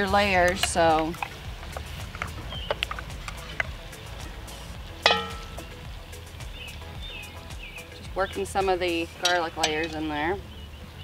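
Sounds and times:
campfire crackling: 0.0 - 11.0.

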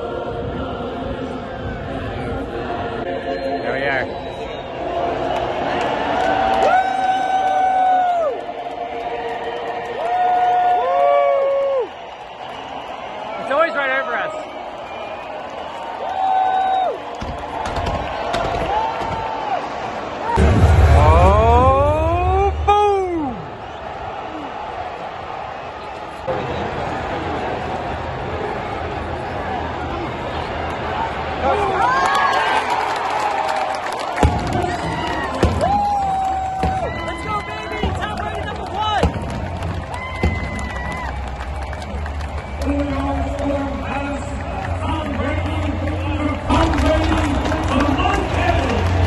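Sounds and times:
crowd voices and cheers: 0.0 - 49.0
loud crowd calls: 3.0 - 49.0
music over stadium loudspeakers: 34.2 - 49.0.

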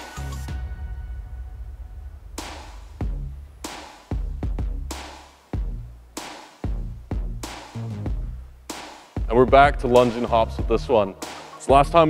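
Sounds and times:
electronic music with drum beat: 0.0 - 12.0
deep bass drum thump: 0.4 - 6.0, 6.6 - 8.5.

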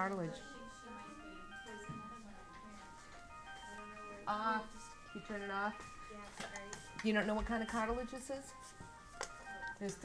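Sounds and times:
faint tinny electronic melody: 0.0 - 10.0.

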